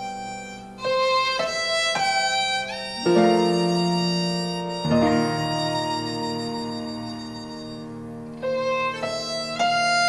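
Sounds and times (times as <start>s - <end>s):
piano chords: 0.0s - 10.0s
violin bowed notes: 0.0s - 10.0s.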